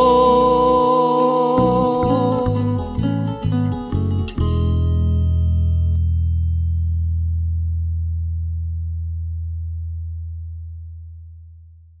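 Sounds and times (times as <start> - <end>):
guitar low note ringing: 0.0 - 11.0.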